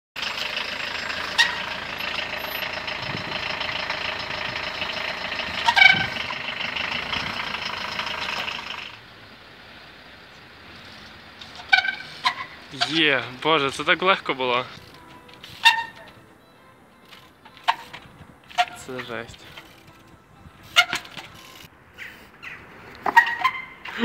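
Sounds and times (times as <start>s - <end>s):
bike landing with metallic clanks: 17.1s - 20.0s, 20.6s - 21.4s.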